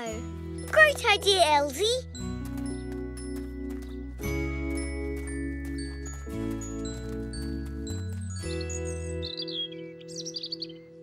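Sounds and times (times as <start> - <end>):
birds chirping: 0.0 - 11.0.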